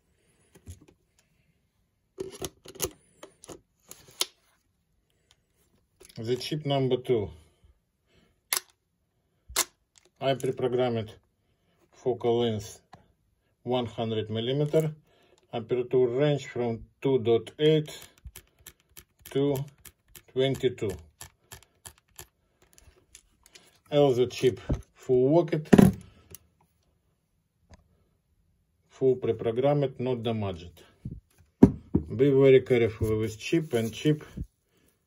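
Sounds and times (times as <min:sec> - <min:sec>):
mirror dropping thump: 0:25.7 - 0:26.0, 0:31.6 - 0:32.0.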